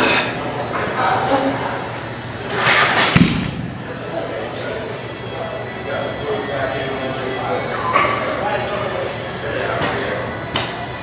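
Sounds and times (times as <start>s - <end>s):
heavy deep thud: 3.1s - 4.0s.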